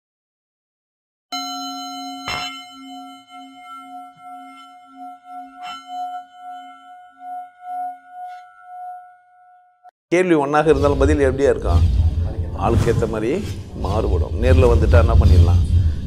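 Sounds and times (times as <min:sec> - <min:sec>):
singing bowl ringing: 0:01.3 - 0:09.9.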